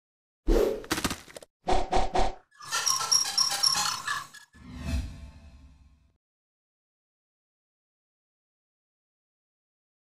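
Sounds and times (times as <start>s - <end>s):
bright repeated pitched notes: 2.6s - 4.5s.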